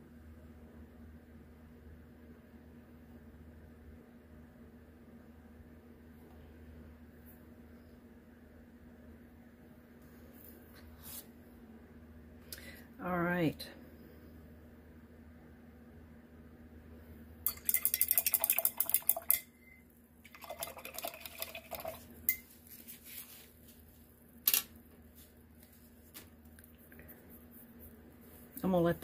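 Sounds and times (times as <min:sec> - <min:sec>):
soft rustle: 0:10.0 - 0:11.4, 0:22.4 - 0:28.8.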